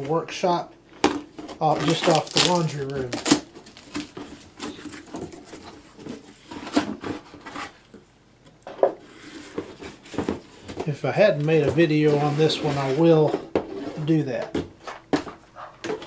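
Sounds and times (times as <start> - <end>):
cardboard knocks and scrapes: 8.8 - 10.9.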